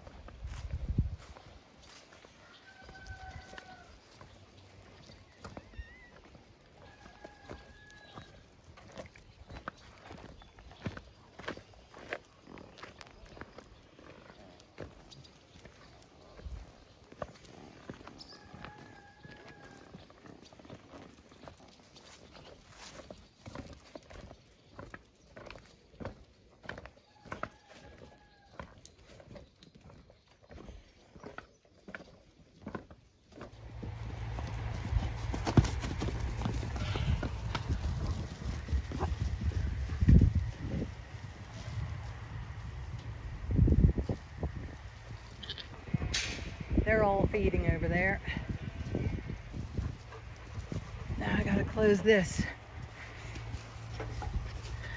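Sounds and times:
footsteps crunching on gravel: 0:00.0 - 0:42.7
horses' hooves on track: 0:00.0 - 0:54.9
wind buffeting microphone: 0:00.2 - 0:01.4, 0:33.6 - 0:54.9.

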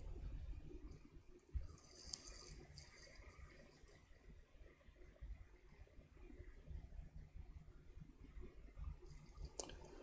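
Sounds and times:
hand rubbing knit beanie: 0:01.6 - 0:04.1.

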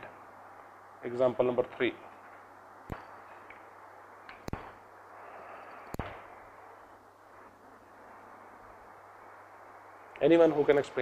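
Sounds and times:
faint steady hiss: 0:00.0 - 0:11.0
low hum: 0:00.0 - 0:11.0
sharp clicks: 0:05.7 - 0:06.2.

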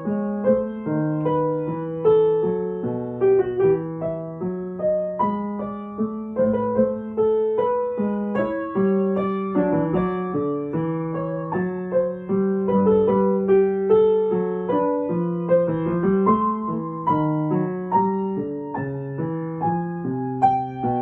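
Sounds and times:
upright piano melody: 0:00.0 - 0:21.0.

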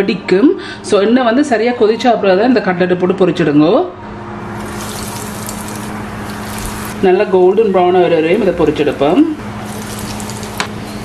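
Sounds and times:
deep-frying sizzle in hot oil: 0:04.5 - 0:07.4, 0:09.2 - 0:11.0.

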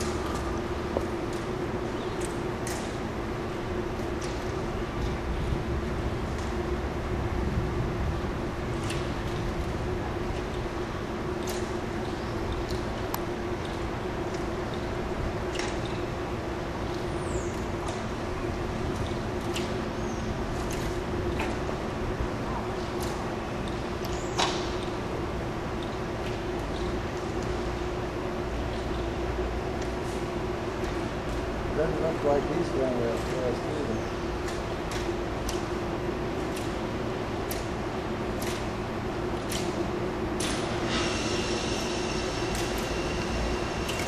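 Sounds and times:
constant low hum: 0:00.0 - 0:44.0.

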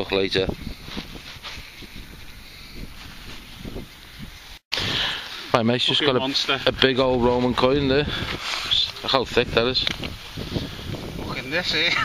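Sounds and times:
wind rumble: 0:06.4 - 0:12.0
camera handling rustle: 0:09.8 - 0:10.2.

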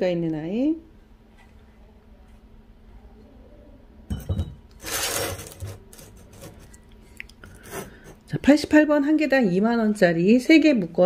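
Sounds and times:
flowerpot scraping on wood: 0:04.8 - 0:06.8, 0:07.4 - 0:08.2.

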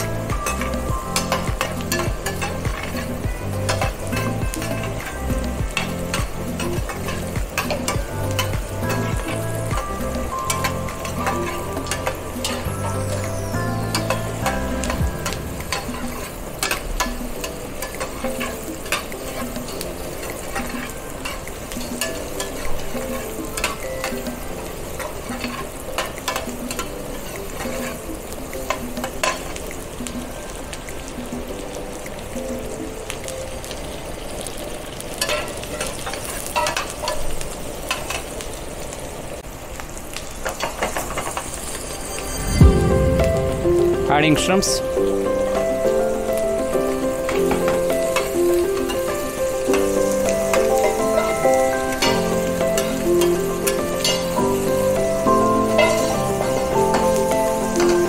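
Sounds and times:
metal spoon scraping a pan: 0:00.0 - 0:29.6, 0:35.2 - 0:38.4, 0:55.8 - 0:58.0
peppers sizzling in a frying pan: 0:00.0 - 0:58.0.

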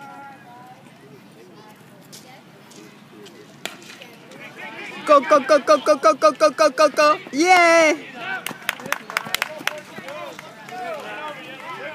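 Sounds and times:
spectator chatter and shouting: 0:00.0 - 0:11.9.

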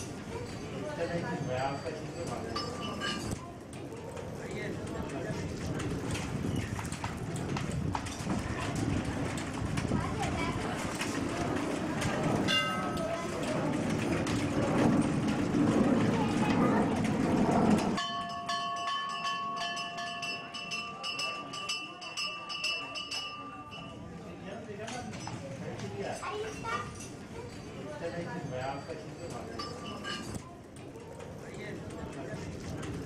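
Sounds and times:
steady ringing tones: 0:00.0 - 0:05.1, 0:11.5 - 0:31.2
murmur of voices: 0:00.0 - 0:18.0, 0:19.5 - 0:33.0.

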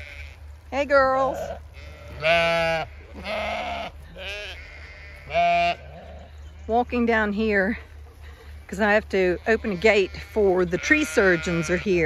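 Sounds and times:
sheep bleating: 0:00.0 - 0:06.4, 0:09.1 - 0:12.0.

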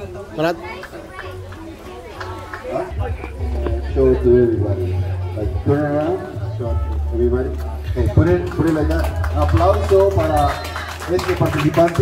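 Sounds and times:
children chattering: 0:00.0 - 0:08.1.

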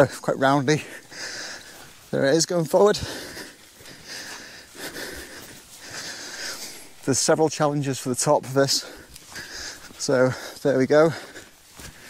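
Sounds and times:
heavy breathing: 0:00.0 - 0:02.1, 0:02.8 - 0:07.3, 0:08.6 - 0:12.0.

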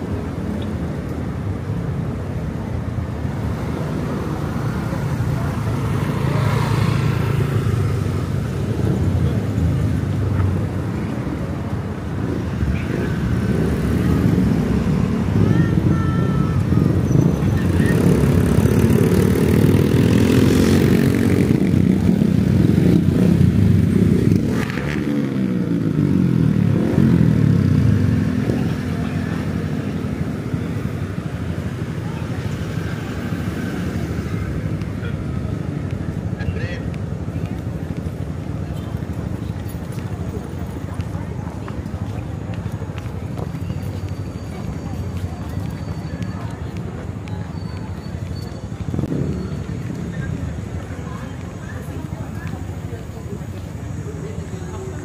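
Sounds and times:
cars passing: 0:00.0 - 0:55.0
motorcycles passing: 0:00.0 - 0:55.0.

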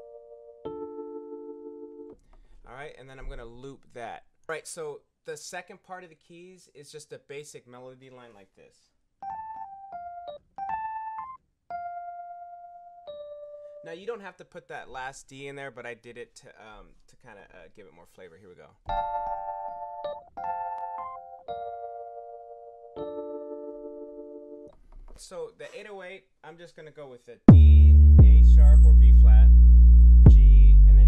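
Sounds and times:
electric piano melody: 0:00.0 - 0:02.2, 0:09.2 - 0:13.9, 0:18.9 - 0:24.7
electric piano note: 0:18.9 - 0:22.2.

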